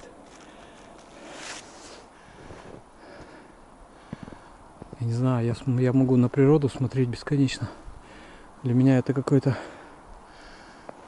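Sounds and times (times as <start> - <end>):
pine needles rustling: 0.0 - 5.1.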